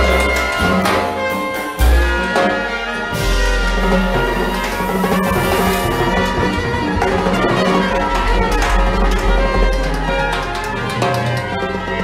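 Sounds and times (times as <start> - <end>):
drum kit with cymbals: 0.0 - 11.4
trumpet: 0.0 - 12.0.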